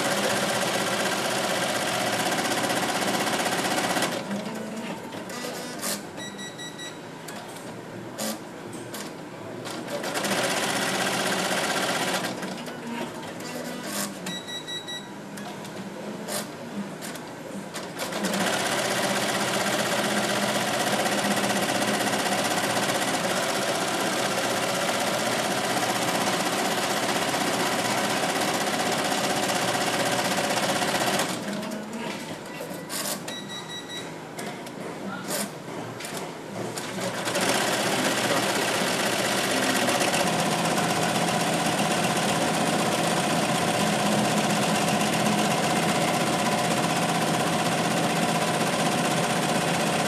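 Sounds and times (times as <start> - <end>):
embroidery machine stitching: 0.0 - 6.0, 9.7 - 14.2, 17.8 - 31.8, 36.6 - 50.0
short electronic beep: 6.2 - 7.0, 14.3 - 15.1, 33.3 - 34.1.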